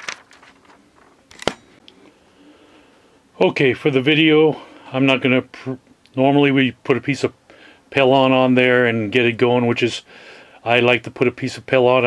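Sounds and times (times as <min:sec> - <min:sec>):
faint handling sounds: 0:00.0 - 0:02.2.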